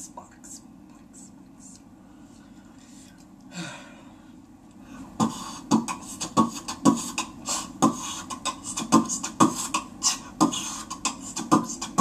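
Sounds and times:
person beatboxing: 5.0 - 12.0.

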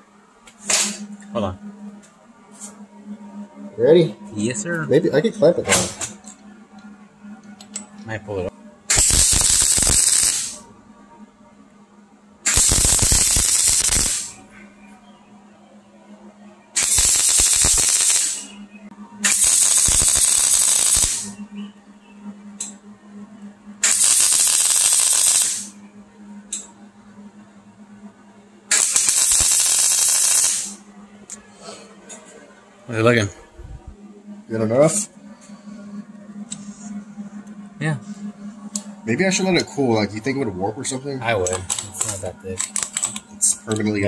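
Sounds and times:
low steady hum: 0.0 - 16.8, 18.4 - 44.0
welding arc crackling: 8.9 - 10.6, 12.4 - 14.4, 16.8 - 18.5, 19.2 - 21.4, 23.8 - 25.8, 28.7 - 30.8.

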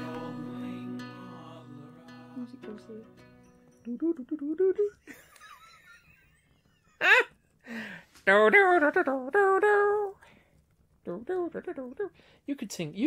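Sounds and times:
person singing wordless tune: 0.0 - 5.0, 8.3 - 10.2, 11.1 - 12.2.

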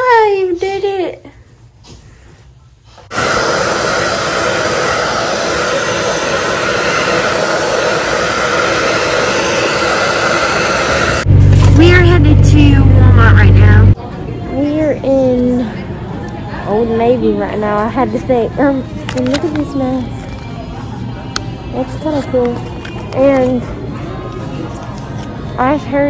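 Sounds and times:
hair dryer running: 3.1 - 11.8
loud low hum: 3.1 - 14.0.

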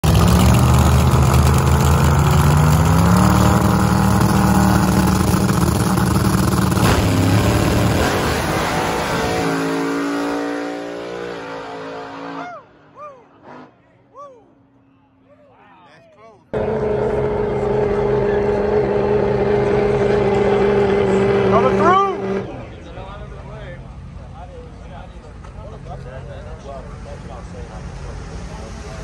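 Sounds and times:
race car engines at full throttle: 0.0 - 14.0, 16.5 - 29.0.

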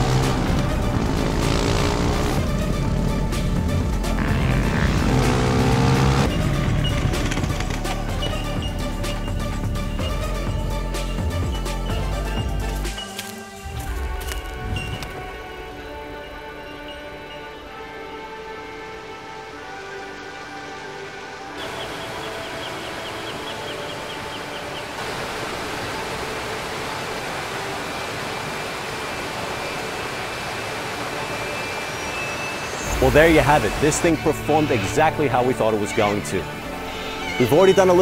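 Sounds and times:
background music: 0.0 - 38.0
waterfall rushing: 13.6 - 38.0.

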